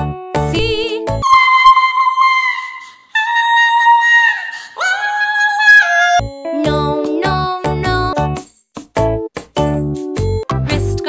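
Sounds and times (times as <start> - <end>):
children's song: 5.0 - 8.2.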